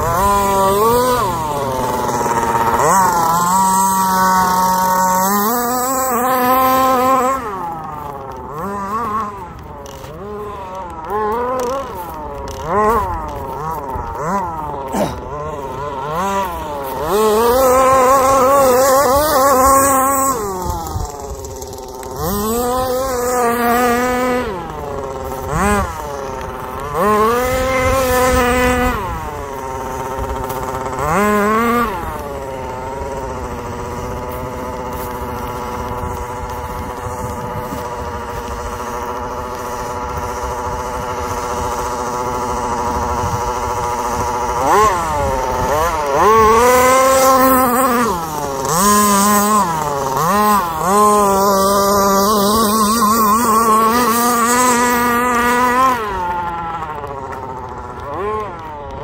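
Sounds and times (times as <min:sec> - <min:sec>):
small two-stroke engine revving: 0:00.0 - 0:59.0.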